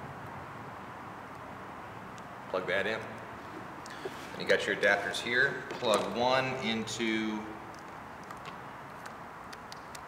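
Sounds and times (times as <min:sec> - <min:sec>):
steady low hiss: 0:00.0 - 0:10.0
plastic wire connectors clicking: 0:07.7 - 0:10.0.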